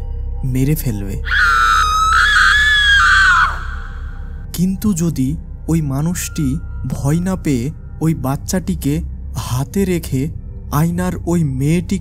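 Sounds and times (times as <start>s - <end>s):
woman screaming high-pitched: 1.3s - 4.2s.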